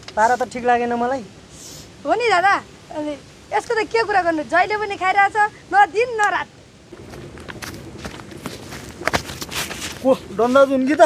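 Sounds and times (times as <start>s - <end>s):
outdoor background noise: 0.0s - 11.0s
footsteps on gravel: 6.9s - 10.8s.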